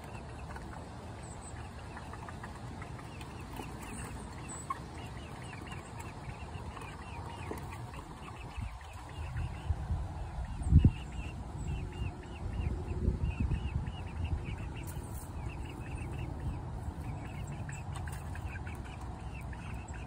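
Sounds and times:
chickens calling softly: 0.0 - 20.0
wind rumbling on microphone: 8.2 - 16.8.

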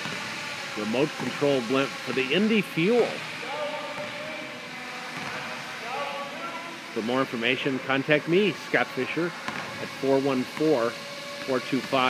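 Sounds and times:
electric propeller motors whirring: 0.0 - 12.0.

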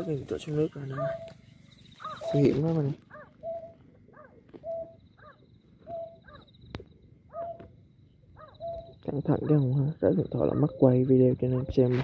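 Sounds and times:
waterhen calls: 0.0 - 6.5.

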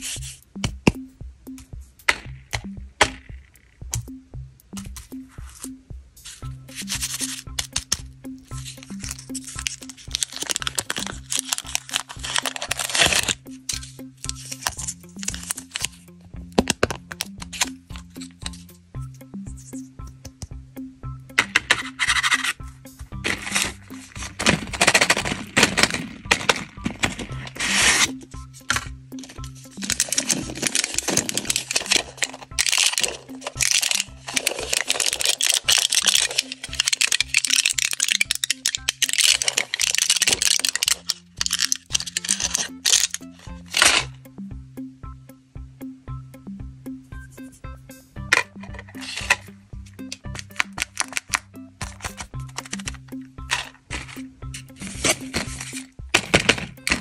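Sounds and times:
quiet background music: 0.0 - 57.0
plastic wrappers crinkling: 8.6 - 16.0, 23.2 - 44.1, 50.1 - 57.0.

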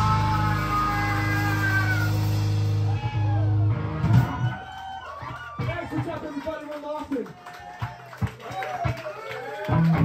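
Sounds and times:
electric guitars and bass chord: 0.0 - 4.4.

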